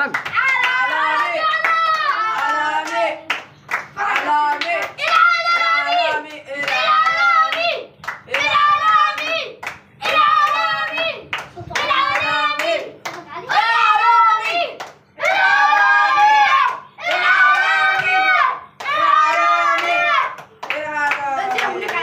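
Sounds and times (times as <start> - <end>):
hands clapping: 0.0 - 13.3, 14.8 - 15.0, 18.8 - 22.0
boys chanting: 0.3 - 22.0.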